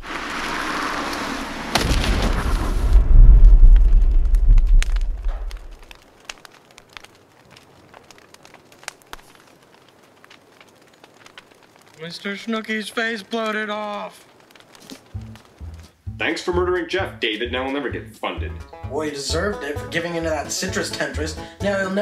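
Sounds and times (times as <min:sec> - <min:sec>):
faint crackles: 0:00.0 - 0:17.9
explosion blast: 0:01.7 - 0:05.7
deep rumble: 0:01.8 - 0:05.8.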